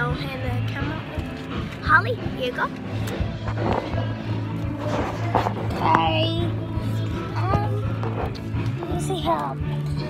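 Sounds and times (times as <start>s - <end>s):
child's voice: 0.0s - 2.7s, 5.8s - 8.0s, 8.8s - 10.0s
background music: 0.0s - 10.0s.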